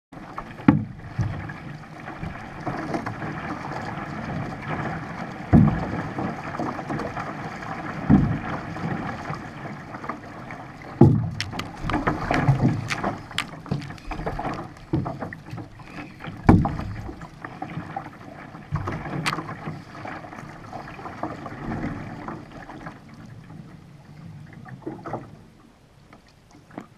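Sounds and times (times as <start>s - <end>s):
water rushing along canoe hull: 0.1s - 26.9s
hull thumping on waves: 0.2s - 23.8s
splashy clicks: 10.8s - 17.3s, 18.8s - 19.7s.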